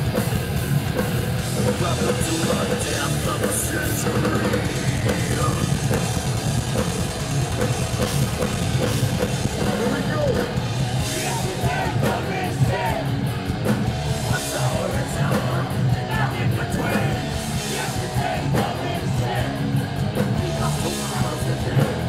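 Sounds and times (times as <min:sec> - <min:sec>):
heavy metal band playing live: 0:00.0 - 0:22.0
vocals over the band: 0:01.4 - 0:06.3, 0:09.4 - 0:22.0.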